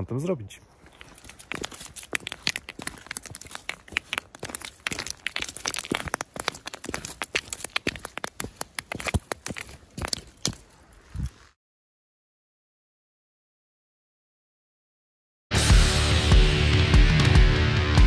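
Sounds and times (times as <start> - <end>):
stones and gravel crunching: 0.7 - 11.6
plastic watch scraping on rocks: 0.8 - 11.4.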